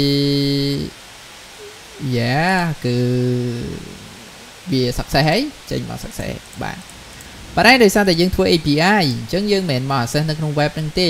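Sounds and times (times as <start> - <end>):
faint hiss: 0.0 - 11.0
man's drawn-out hesitation vowel: 1.6 - 4.9.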